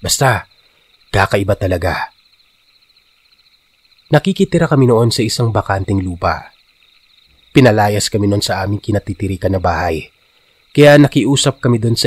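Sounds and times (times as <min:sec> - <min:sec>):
crickets chirping at night: 0:00.0 - 0:12.0.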